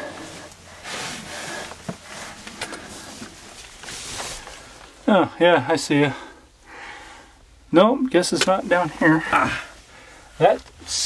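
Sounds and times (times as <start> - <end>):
noisy breathing: 0.0 - 5.0, 6.0 - 7.7, 9.1 - 10.4.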